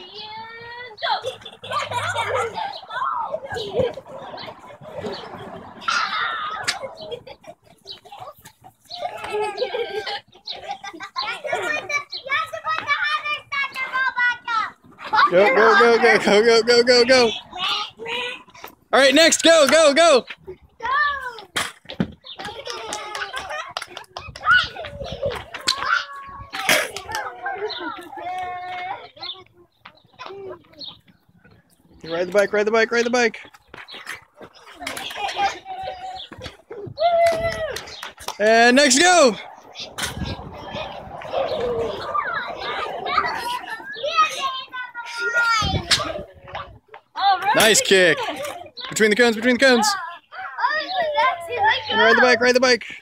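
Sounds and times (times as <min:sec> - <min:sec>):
children calling out and chattering: 0:00.0 - 0:53.0.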